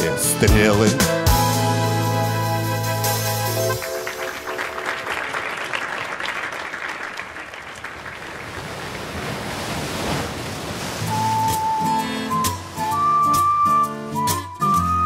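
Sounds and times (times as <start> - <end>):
low bass notes: 0.0 - 3.8
audience applauding: 3.6 - 9.2.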